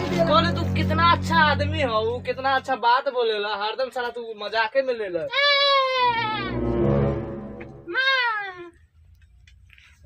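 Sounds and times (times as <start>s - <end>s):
high drawn-out cry: 5.3s - 6.6s, 7.9s - 8.7s.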